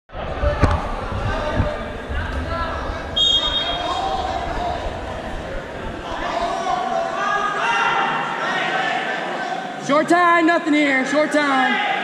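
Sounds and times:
voices in a large gym: 0:00.1 - 0:12.0
referee's whistle blast: 0:03.2 - 0:03.9.

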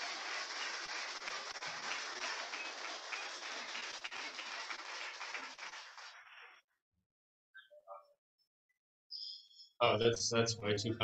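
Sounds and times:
audience applauding: 0:00.0 - 0:06.6.

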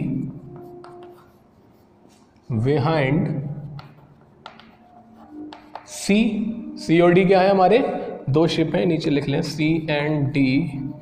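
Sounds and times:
chalk tapping on blackboard: 0:00.2 - 0:02.4, 0:03.6 - 0:06.1
chalk scratching on blackboard: 0:00.2 - 0:02.8, 0:03.6 - 0:06.1.

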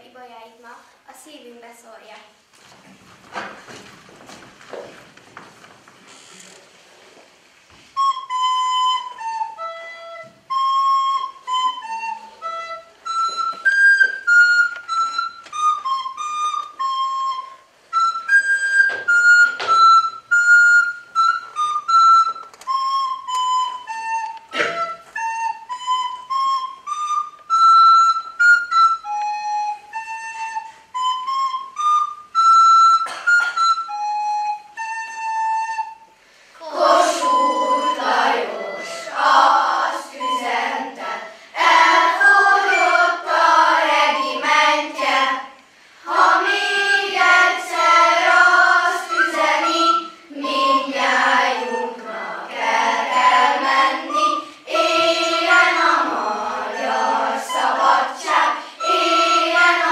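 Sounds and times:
recorder melody: 0:07.7 - 0:59.9
children's choir singing: 0:36.5 - 0:59.9.

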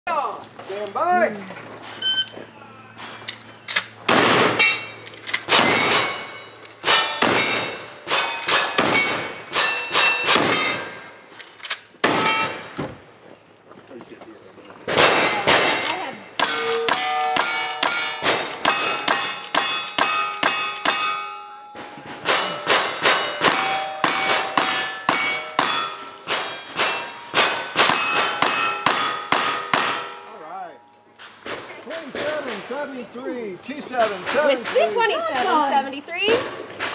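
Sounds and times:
steel targets clanging: 0:03.0 - 0:11.2, 0:12.1 - 0:12.8, 0:15.0 - 0:32.7.

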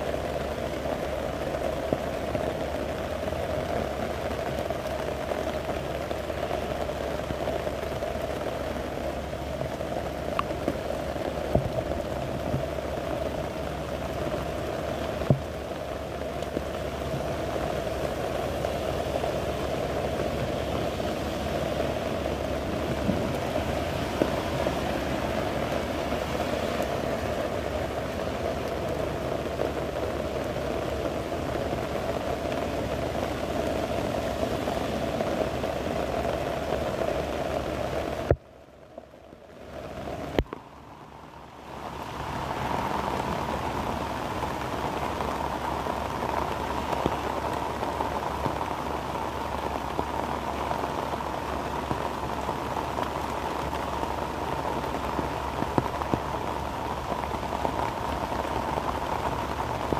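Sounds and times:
heavy rain falling: 0:00.0 - 0:59.9.

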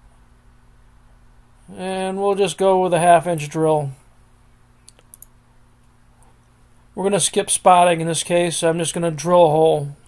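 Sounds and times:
faint electrical hum: 0:00.0 - 0:10.0
computer mouse clicks: 0:04.9 - 0:05.4.

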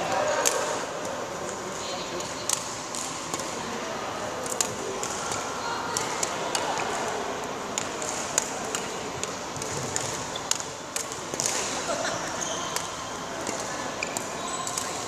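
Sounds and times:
rackets hitting shuttlecocks: 0:02.4 - 0:03.6, 0:07.7 - 0:15.0
shoe squeaks: 0:12.0 - 0:13.1.

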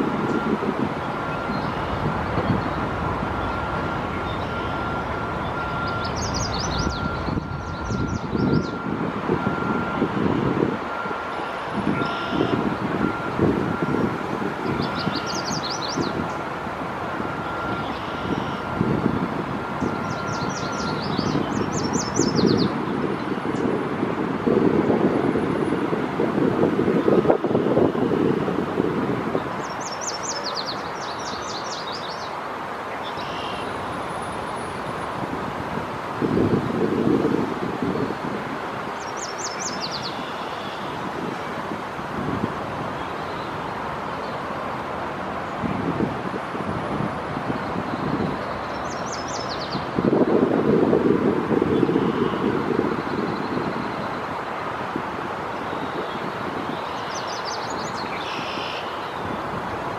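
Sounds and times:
road traffic rumble: 0:00.0 - 0:59.9
trilled bird call: 0:03.4 - 0:08.8, 0:11.4 - 0:13.2, 0:19.8 - 0:22.7.

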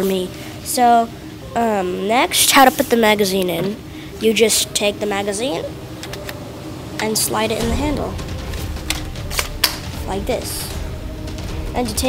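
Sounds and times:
low rumble: 0:06.6 - 0:12.0
magazine sliding into grip: 0:08.9 - 0:09.8.

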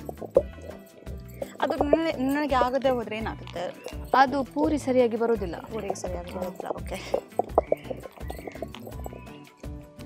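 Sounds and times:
stone pestle grinding in basin: 0:00.0 - 0:04.3, 0:05.4 - 0:09.3
background music: 0:00.0 - 0:10.0.

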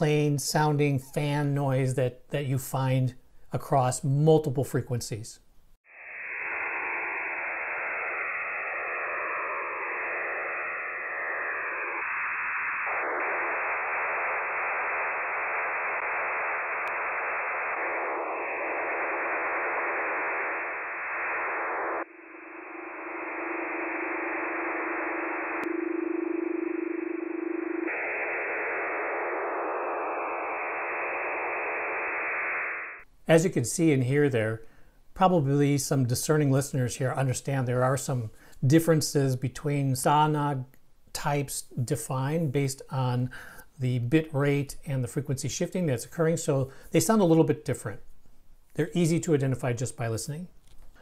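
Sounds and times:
steady low tone: 0:05.9 - 0:33.0
radio data signal hiss: 0:05.9 - 0:34.5, 0:35.4 - 0:51.0.

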